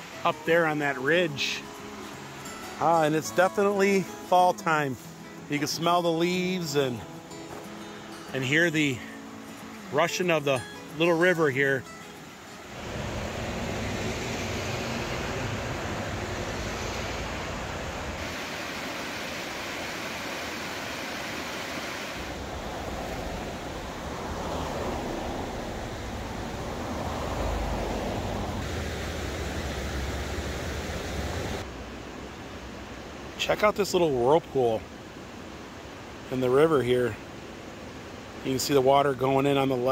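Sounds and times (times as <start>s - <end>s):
mountain stream rushing: 0.0s - 39.9s.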